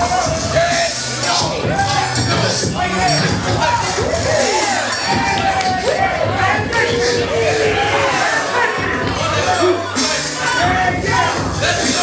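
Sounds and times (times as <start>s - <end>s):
crowd noise: 0.0s - 12.0s
loud dance music with vocals: 0.0s - 12.0s.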